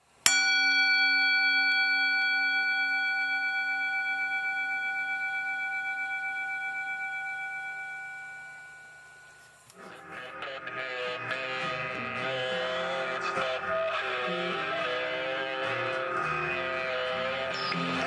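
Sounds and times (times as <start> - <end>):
struck metal bell ringing: 0.3 - 9.6.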